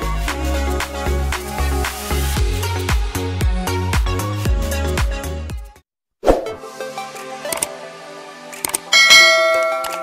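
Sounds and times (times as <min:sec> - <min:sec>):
background music: 0:00.0 - 0:10.0
bright bell-like ding: 0:09.0 - 0:10.0.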